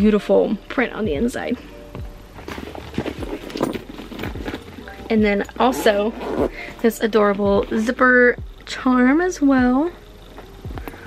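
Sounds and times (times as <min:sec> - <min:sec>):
soft knocks and rustles of bag: 0:02.4 - 0:06.6.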